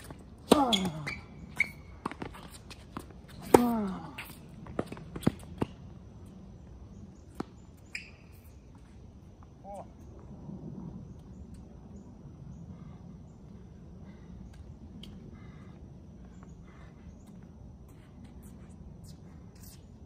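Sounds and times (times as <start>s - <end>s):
racket hitting tennis ball: 0.0s - 5.8s
tennis ball bouncing: 0.4s - 5.8s.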